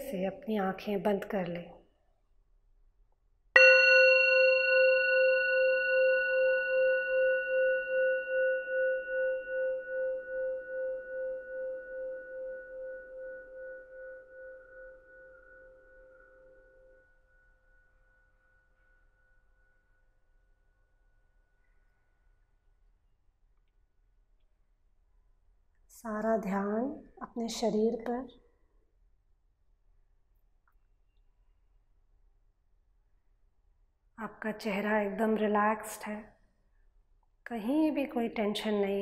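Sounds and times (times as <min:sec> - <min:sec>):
meditation bell ringing: 0:03.6 - 0:22.2.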